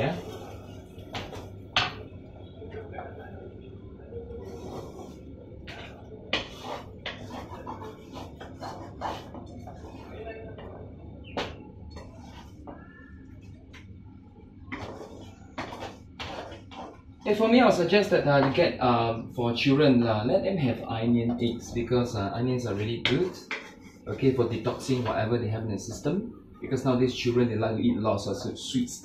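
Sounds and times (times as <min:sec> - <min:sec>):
steady low hum: 0:00.0 - 0:29.0
spatula scraping frying pan: 0:14.7 - 0:17.0.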